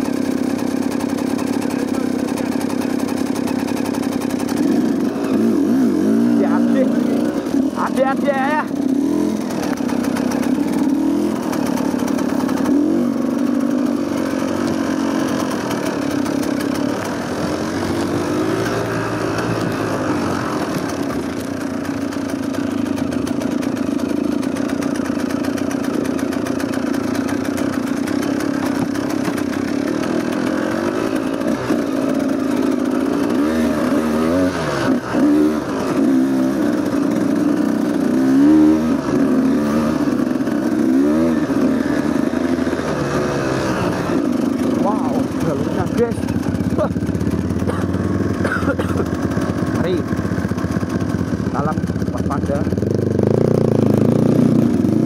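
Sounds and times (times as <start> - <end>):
dirt bike engine revving: 0.0 - 55.0.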